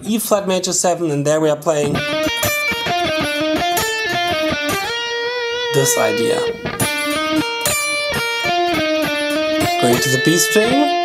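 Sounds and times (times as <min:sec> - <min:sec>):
electric guitar picked notes: 0:01.8 - 0:11.0.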